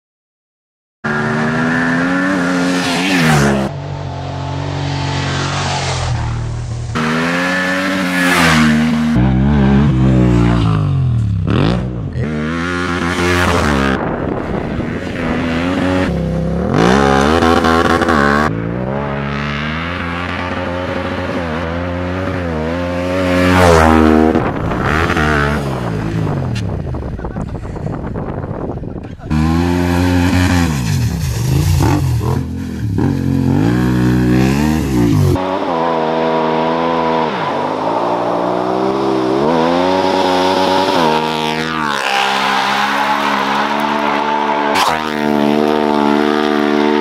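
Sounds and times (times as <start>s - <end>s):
motorcycle engine revving: 1.1s - 28.4s, 29.0s - 47.0s.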